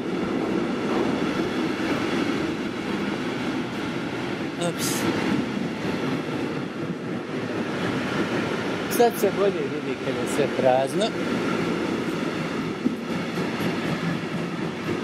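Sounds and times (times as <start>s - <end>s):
train wheels rumbling on rail: 0.0s - 15.0s.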